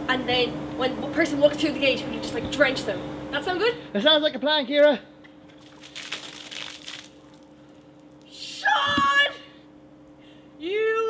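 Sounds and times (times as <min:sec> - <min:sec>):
water splash: 0:05.5 - 0:07.6.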